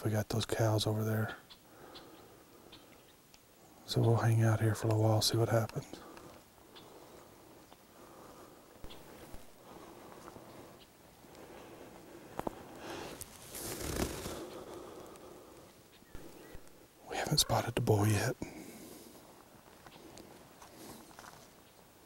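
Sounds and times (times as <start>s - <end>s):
clothing and camera rustling: 12.4s - 14.6s.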